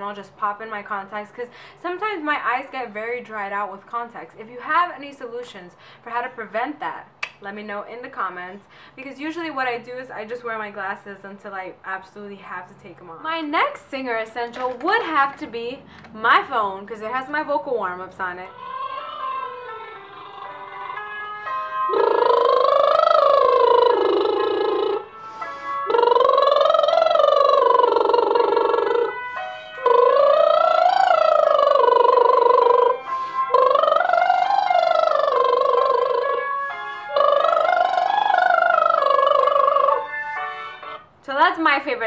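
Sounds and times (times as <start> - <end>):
woman's lip trills: 21.9 - 25.1, 25.9 - 29.2.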